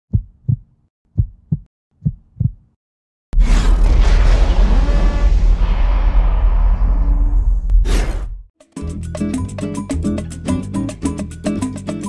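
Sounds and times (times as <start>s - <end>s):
low thumps like a heartbeat: 0.1s - 2.7s
loud rumbling boom: 3.4s - 8.5s.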